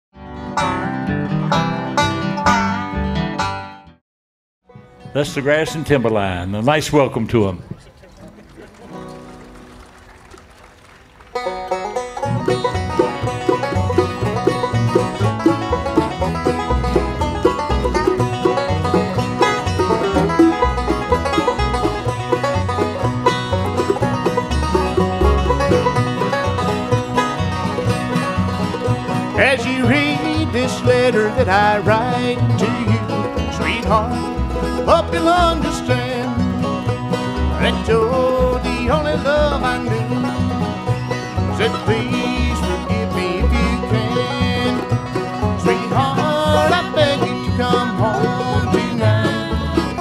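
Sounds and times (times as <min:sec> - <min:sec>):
bluegrass banjo and guitar music: 0:00.2 - 0:03.9, 0:04.7 - 0:09.9, 0:11.3 - 0:50.0
mandolin: 0:00.2 - 0:04.0, 0:04.7 - 0:10.4, 0:11.3 - 0:50.0
upright bass walking: 0:00.3 - 0:03.8, 0:04.7 - 0:50.0.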